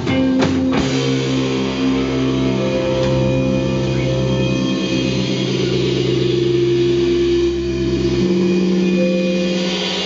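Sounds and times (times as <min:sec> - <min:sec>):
electric guitar drone: 0:00.0 - 0:10.0.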